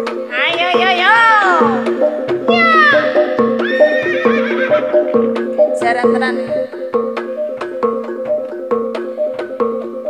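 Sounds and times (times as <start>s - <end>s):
drum strokes: 0.0s - 10.0s
gamelan music: 0.0s - 10.0s
metallic gong and metallophone notes: 0.0s - 10.0s
high falling whinny-like cry: 2.5s - 5.0s.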